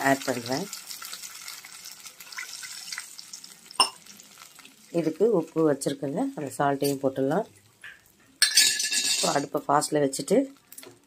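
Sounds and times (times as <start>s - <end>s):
faint sizzle in pan: 0.0s - 8.5s, 9.3s - 11.0s.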